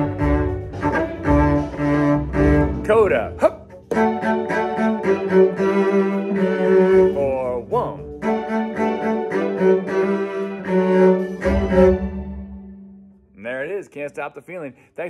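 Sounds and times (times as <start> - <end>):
string orchestra playing: 0.0 - 13.0
cello bowing: 0.0 - 13.1.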